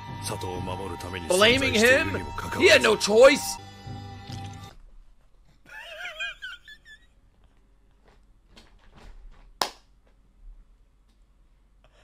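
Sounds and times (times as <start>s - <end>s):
man's squeaky wheezing laugh: 5.7s - 7.2s
sharp slap or clap: 9.6s - 9.9s.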